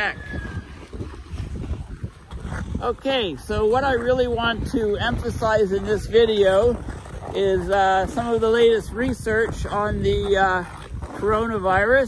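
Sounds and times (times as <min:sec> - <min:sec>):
skate blades scraping on ice: 0:00.0 - 0:12.0
wind buffeting microphone: 0:00.0 - 0:12.0.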